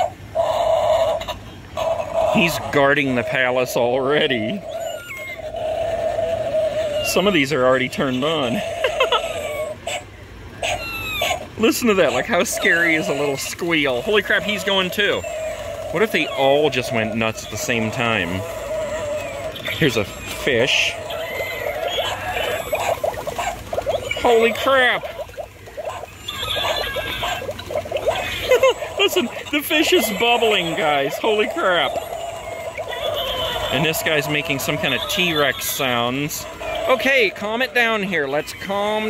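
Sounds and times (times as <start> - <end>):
toy electronic squeal: 10.6 - 25.3, 25.9 - 39.0.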